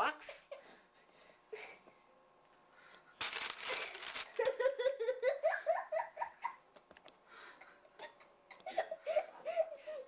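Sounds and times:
young girl giggling: 4.4s - 6.6s, 7.6s - 10.0s.

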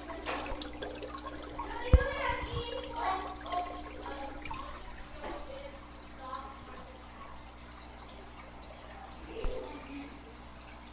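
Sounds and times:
aquarium water churning: 0.0s - 10.9s.

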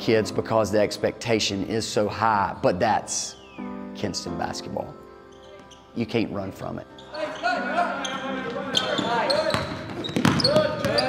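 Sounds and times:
players calling out: 6.8s - 11.0s
ball bouncing on wooden floor: 9.0s - 11.0s.

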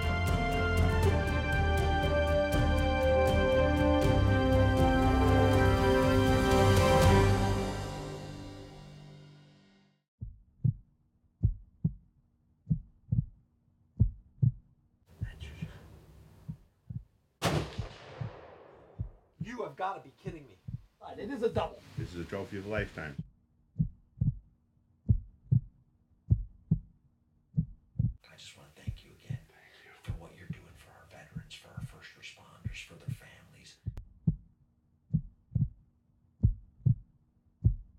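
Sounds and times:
heartbeat thumps: 10.2s - 10.8s, 11.4s - 12.0s, 12.7s - 13.3s, 14.0s - 17.1s, 20.2s - 22.2s, 23.8s - 24.4s, 25.1s - 25.7s, 26.3s - 26.9s, 27.6s - 28.2s, 28.8s - 30.7s, 31.3s - 32.0s, 32.6s - 34.4s, 35.1s - 35.8s, 36.4s - 37.0s, 37.6s - 37.9s
faint hiss: 21.0s - 23.2s.

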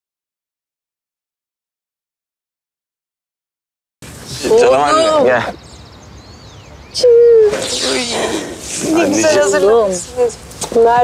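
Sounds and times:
people greeting: 4.2s - 11.0s
faint bird chirps: 4.4s - 8.1s.

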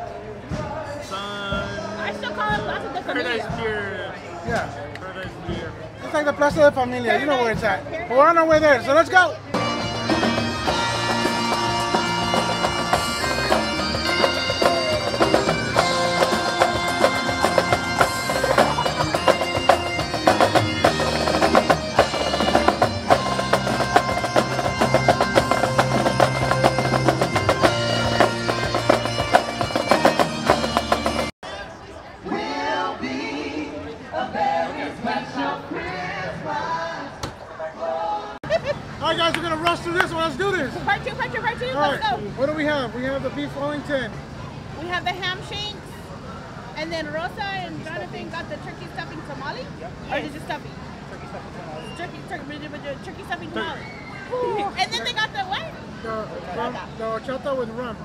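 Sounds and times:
crowd chatter: 0.0s - 58.0s
wind instruments playing: 9.5s - 31.4s
snare drums: 9.6s - 31.3s.

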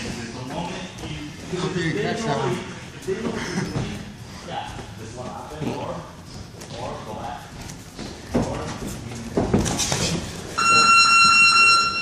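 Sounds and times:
round-timer buzzer tone: 10.6s - 12.0s.

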